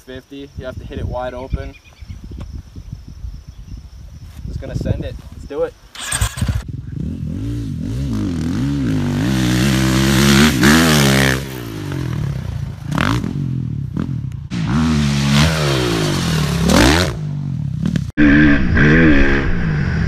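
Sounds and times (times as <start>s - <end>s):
motocross bike engine revving: 6.0s - 20.0s.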